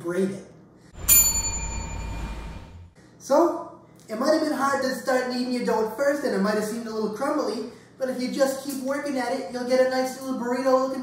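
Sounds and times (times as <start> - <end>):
bell-like ding: 1.0 - 2.9
low rumble: 1.0 - 3.0.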